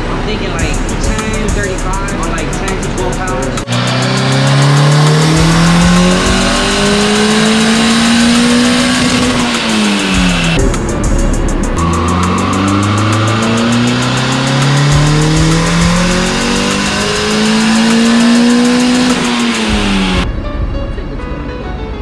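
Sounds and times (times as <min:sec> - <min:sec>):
car engine revving on dyno: 0:00.0 - 0:20.3.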